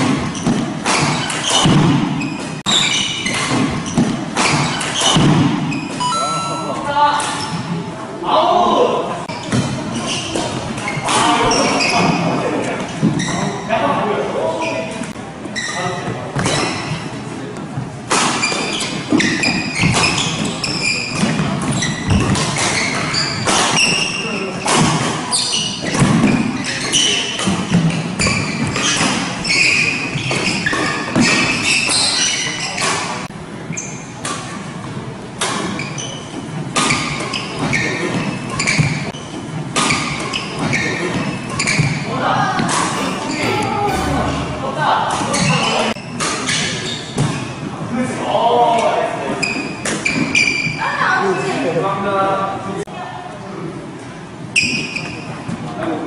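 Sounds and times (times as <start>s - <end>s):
players' voices: 42.7s - 45.5s.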